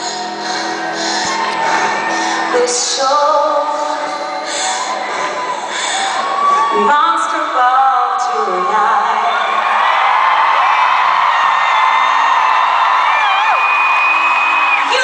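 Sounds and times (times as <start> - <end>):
woman singing a ballad: 0.0 - 9.6
crowd whooping and voices: 0.0 - 15.0
piano: 0.0 - 15.0.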